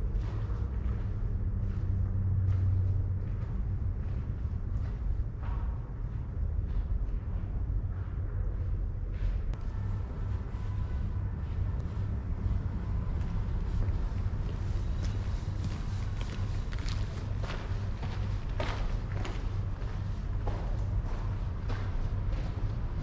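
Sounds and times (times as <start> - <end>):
low rumble: 0.0 - 23.0.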